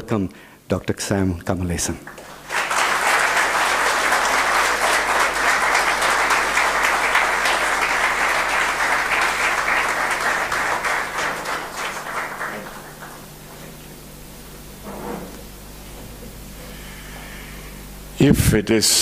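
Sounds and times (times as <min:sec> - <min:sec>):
crowd applauding: 0:02.1 - 0:13.7.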